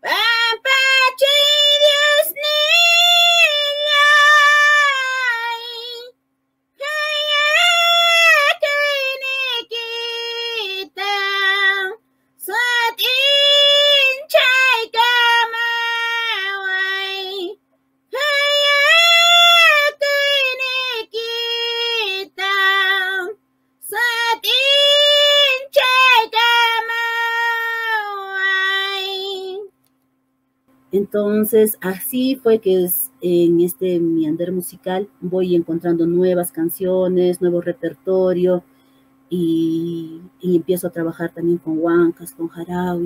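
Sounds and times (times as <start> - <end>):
woman singing a cappella: 0.0 - 6.2, 6.8 - 29.8, 30.7 - 43.0.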